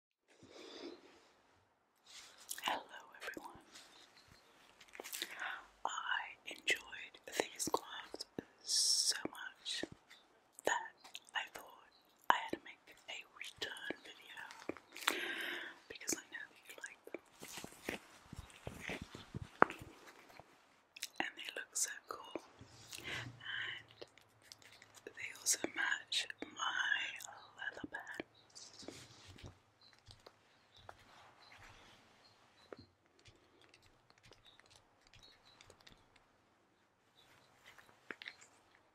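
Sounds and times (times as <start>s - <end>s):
close whispering: 2.2s - 20.4s, 21.0s - 29.4s
wet mouth clicks: 2.4s - 2.7s, 9.1s - 13.0s, 21.0s - 21.6s, 32.6s - 36.3s
gloves crackling and rubbing: 3.6s - 5.8s, 14.0s - 21.0s, 23.9s - 25.1s, 28.3s - 38.9s.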